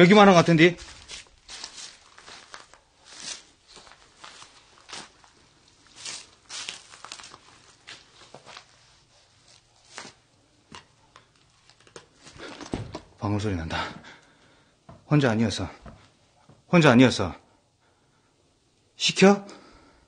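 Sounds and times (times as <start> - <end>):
footsteps on gritty floor: 0.0 - 10.9.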